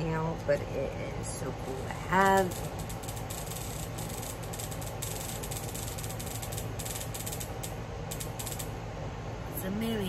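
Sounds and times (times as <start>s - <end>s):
bug zapper crackling snaps: 2.2s - 8.8s.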